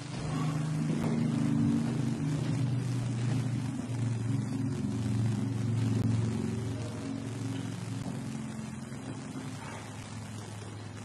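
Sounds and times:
low sustained tones: 0:00.0 - 0:11.0.

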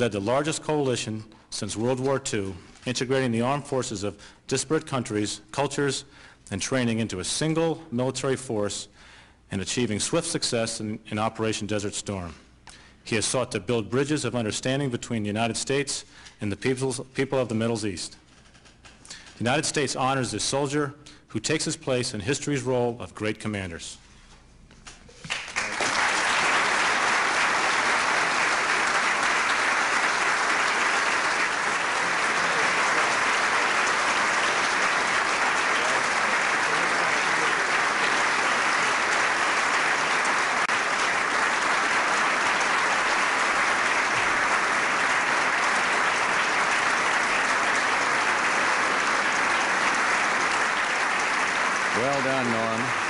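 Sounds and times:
large audience applauding: 0:25.3 - 0:53.0.

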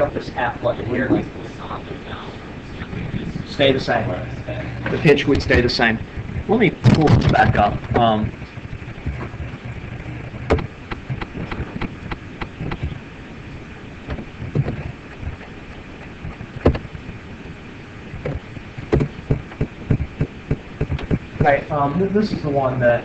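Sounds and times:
low rumble of room noise: 0:00.0 - 0:23.0.

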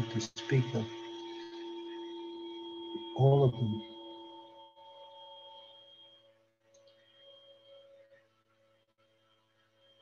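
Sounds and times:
steady hum of held tones: 0:00.0 - 0:10.0.

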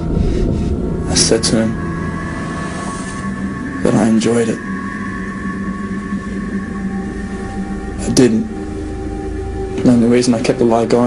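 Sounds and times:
low drone of held tones: 0:00.0 - 0:11.0
low rumble: 0:00.0 - 0:11.0.

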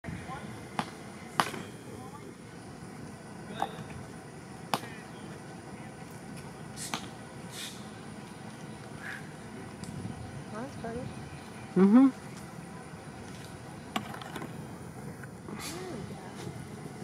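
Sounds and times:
outdoor background noise: 0:00.0 - 0:17.0.

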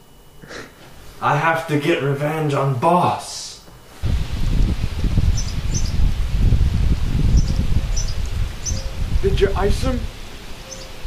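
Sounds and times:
wind rumbling on microphone: 0:04.0 - 0:11.0
high bird chirps: 0:05.3 - 0:06.0, 0:07.3 - 0:09.1, 0:10.6 - 0:11.0.

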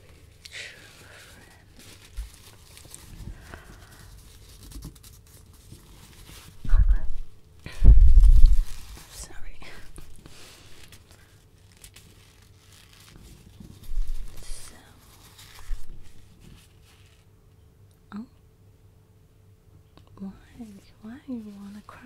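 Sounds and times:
sleeve rustling on microphone: 0:05.6 - 0:17.3
deep rubbing rumbles: 0:06.6 - 0:09.1.

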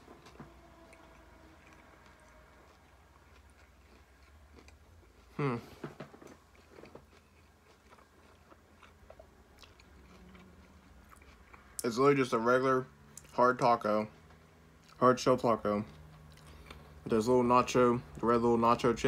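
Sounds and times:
chewing crunchy taco: 0:00.0 - 0:19.0.

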